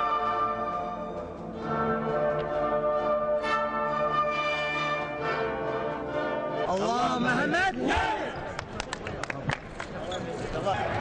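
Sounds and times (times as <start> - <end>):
orchestral anthem with brass: 0.0 - 6.7
crowd cheering and shouting: 6.9 - 8.5.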